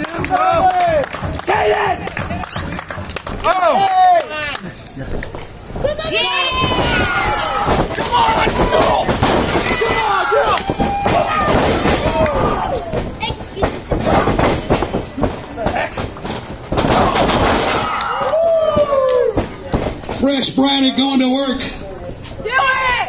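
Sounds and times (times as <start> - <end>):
people shouting and yelling: 0.0 - 4.8, 5.7 - 14.8, 16.7 - 21.6, 22.3 - 23.0.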